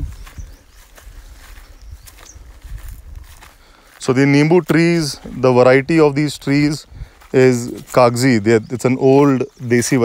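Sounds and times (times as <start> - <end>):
footsteps on dry grass: 0.0 - 10.0.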